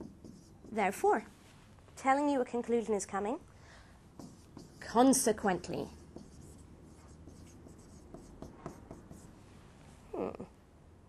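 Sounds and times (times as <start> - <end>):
marker squeaking on whiteboard: 0.0 - 1.0, 4.2 - 5.2, 5.9 - 9.2.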